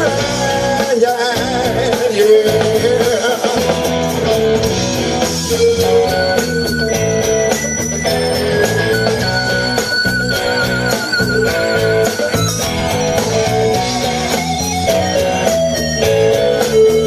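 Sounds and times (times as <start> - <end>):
high lead guitar notes: 0.0 - 17.0
live rock band playing: 0.0 - 17.0.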